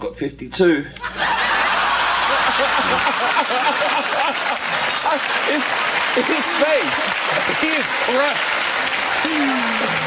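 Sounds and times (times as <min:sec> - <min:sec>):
audience laughing: 0:01.0 - 0:08.4
audience applauding: 0:01.2 - 0:10.0.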